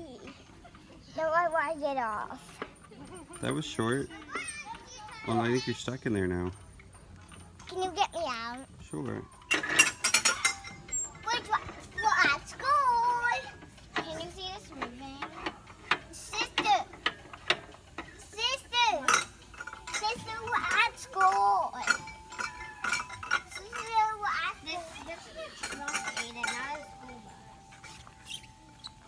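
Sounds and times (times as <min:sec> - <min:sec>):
sharp clicks and clinks: 0:02.4 - 0:29.0
children calling out and shrieking: 0:04.2 - 0:05.8, 0:19.9 - 0:27.2.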